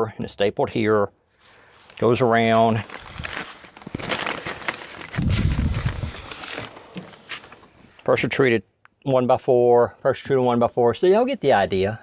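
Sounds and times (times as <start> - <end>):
tarp rustling and crinkling: 1.4 - 7.9
scraping close to microphone: 5.0 - 7.9.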